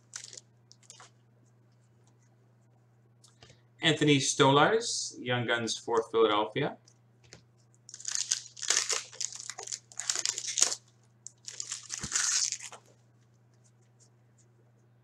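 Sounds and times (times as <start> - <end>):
foil wrapper crinkling and tearing: 0.0 - 1.1, 7.9 - 12.9.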